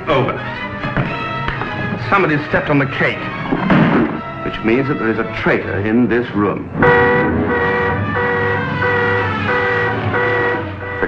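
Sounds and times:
alarm klaxon blaring: 0:06.7 - 0:11.0.

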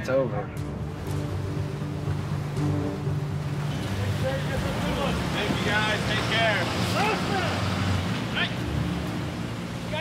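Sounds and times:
wind: 0:00.0 - 0:10.0
boat engine droning: 0:00.2 - 0:10.0
sea noise: 0:00.9 - 0:10.0.

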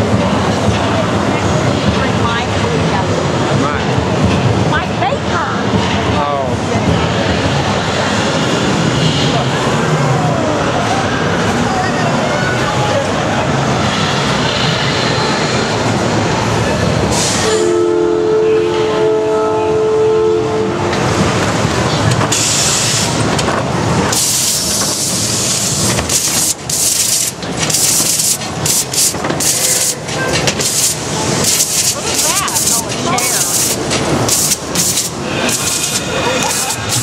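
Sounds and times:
bursts of hissing air: 0:17.1 - 0:17.5, 0:22.3 - 0:23.3, 0:24.1 - 0:37.0
loud horn-like chord: 0:17.4 - 0:20.9.

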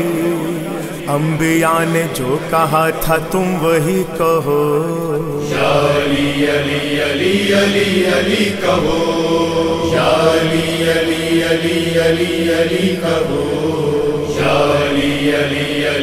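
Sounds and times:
man chanting: 0:00.0 - 0:06.2.

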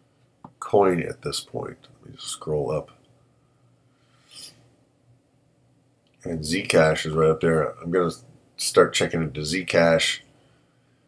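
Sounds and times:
soft hiss: 0:00.0 - 0:11.0.

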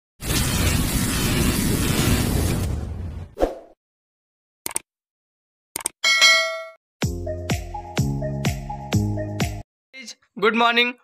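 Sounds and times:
ding sound effect: 0:06.0 - 0:06.8
intro music with thumping beat: 0:07.0 - 0:09.6.

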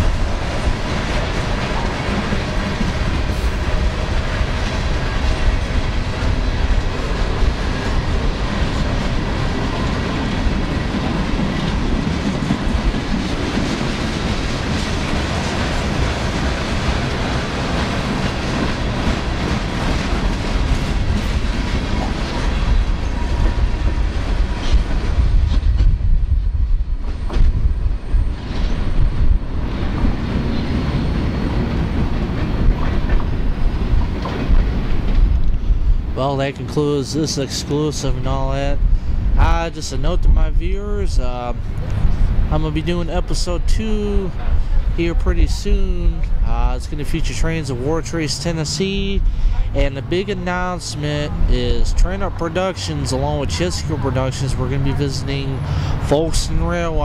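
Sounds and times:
high hiss of train: 0:00.0 - 0:23.9
train wheels clicking over rail joints: 0:00.0 - 0:26.0
freight train rumble: 0:00.0 - 0:57.0.

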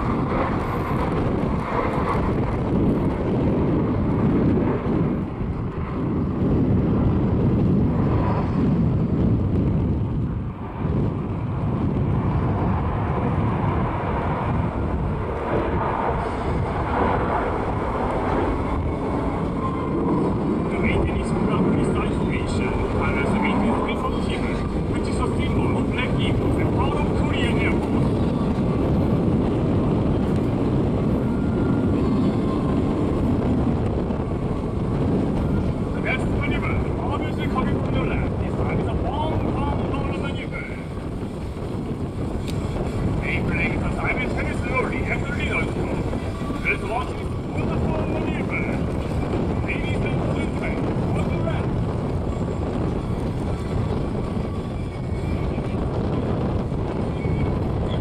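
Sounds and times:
jet engines rumbling: 0:00.0 - 0:58.0.

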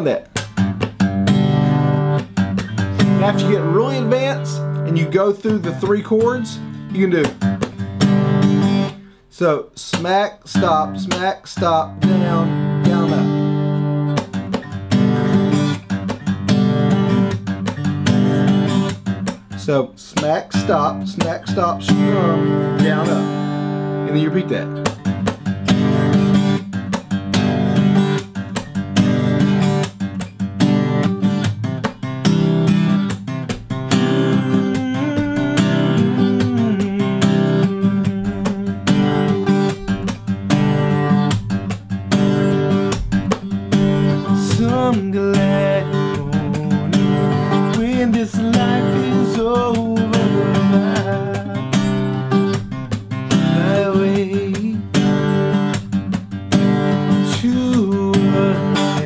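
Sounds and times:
acoustic guitar slap-strumming: 0:00.0 - 0:59.0.

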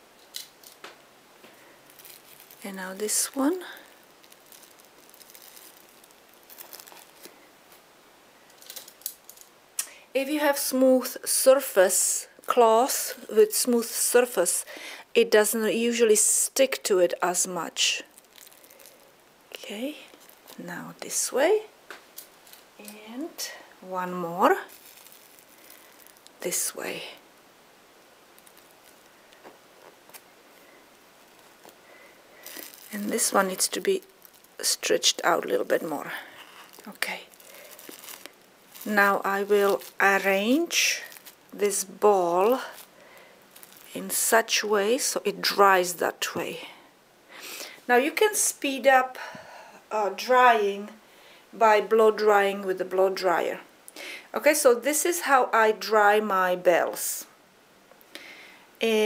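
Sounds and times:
soft rustling: 0:00.0 - 0:09.5, 0:17.2 - 0:46.9
handling noise of fabric: 0:00.0 - 0:09.6, 0:17.3 - 0:46.3.

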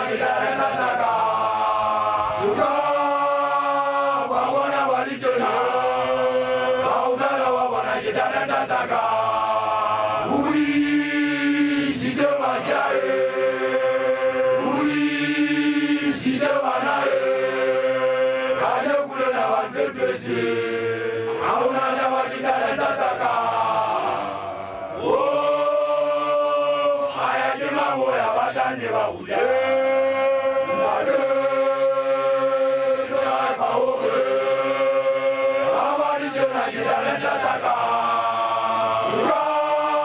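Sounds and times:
male group chanting: 0:00.0 - 0:40.0.

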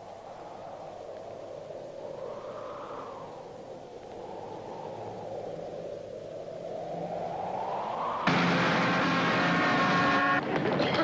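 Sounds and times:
choppy traffic sound: 0:08.2 - 0:11.0
traffic engine noise: 0:08.2 - 0:11.0.

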